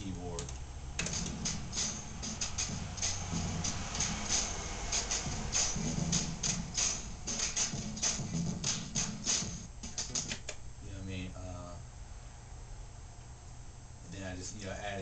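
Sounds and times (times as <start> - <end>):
drum loop beat: 0.0 - 10.7.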